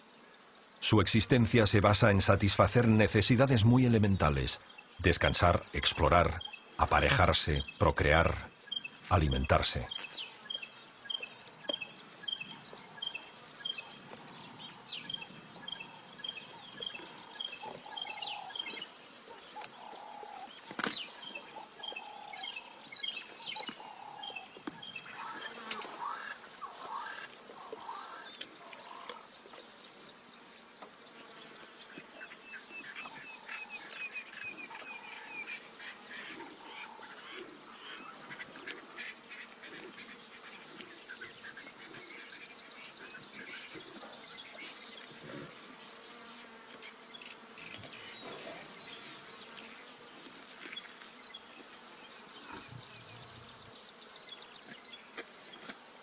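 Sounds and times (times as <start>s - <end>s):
insect trills: 0.0s - 30.4s
wild bird calls and chirps: 0.0s - 56.0s.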